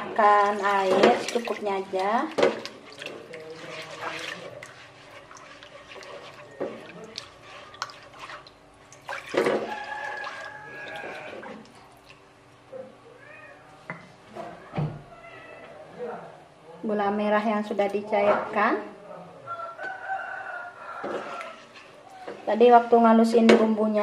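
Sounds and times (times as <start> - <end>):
water pouring and splashing: 0.0 - 12.3
spatula scraping a wok: 0.4 - 8.5, 21.1 - 22.5.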